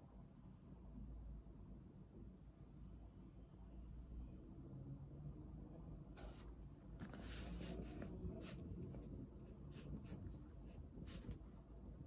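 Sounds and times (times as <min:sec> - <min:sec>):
pen scratching on paper: 0:06.2 - 0:11.5.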